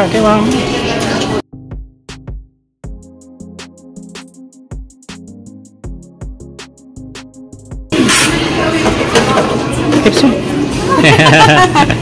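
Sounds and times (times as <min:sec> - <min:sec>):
busy arcade chatter: 0:08.1 - 0:11.0.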